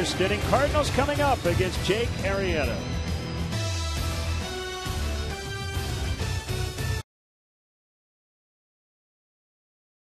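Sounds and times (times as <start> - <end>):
music: 0.0 - 7.0.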